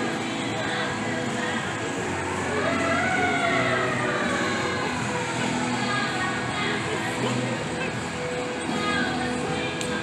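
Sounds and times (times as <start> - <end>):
steady background noise: 0.0 - 10.0
emergency vehicle siren wailing: 2.3 - 7.5.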